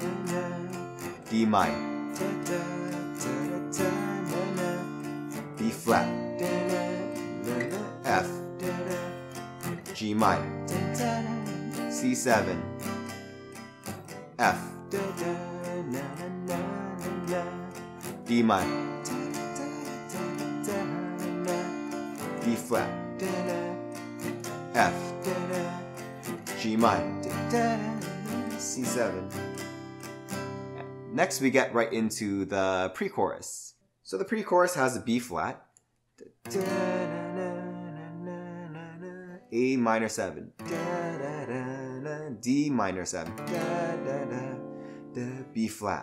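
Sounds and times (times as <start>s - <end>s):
acoustic guitar strumming: 0.0s - 32.0s, 36.4s - 45.7s.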